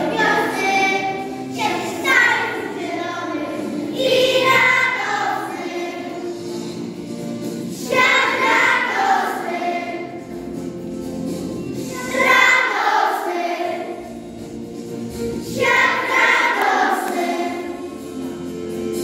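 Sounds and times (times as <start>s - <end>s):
choir singing: 0.0s - 6.8s, 7.7s - 10.5s, 11.8s - 14.2s, 15.4s - 19.0s.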